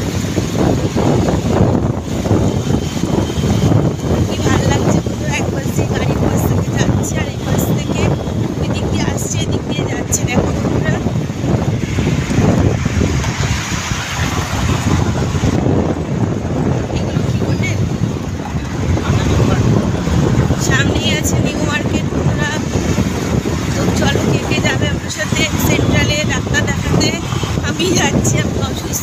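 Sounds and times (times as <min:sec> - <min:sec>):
traffic noise: 0:00.0 - 0:29.0
wind buffeting microphone: 0:00.0 - 0:29.0.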